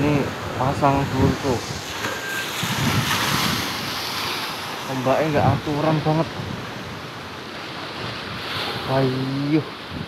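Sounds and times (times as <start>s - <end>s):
sea surf breaking on shore: 0.0s - 10.0s.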